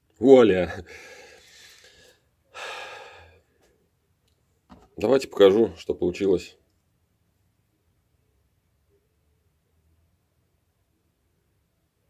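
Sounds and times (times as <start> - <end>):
man breathing close to microphone: 0.9 - 3.5.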